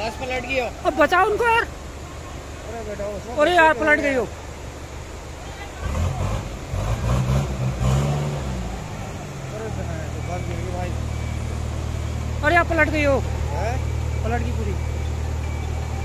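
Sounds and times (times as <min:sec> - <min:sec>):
diesel engine running: 0:00.0 - 0:16.0.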